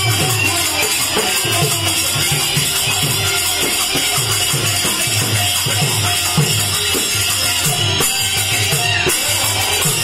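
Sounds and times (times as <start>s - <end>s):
hand cymbals jingling: 0.0s - 10.0s
hand drum strokes: 0.0s - 10.0s.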